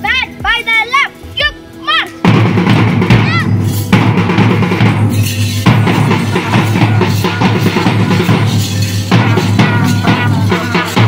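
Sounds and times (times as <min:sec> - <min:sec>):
boy shouting drill commands: 0:00.0 - 0:02.2, 0:03.2 - 0:03.5.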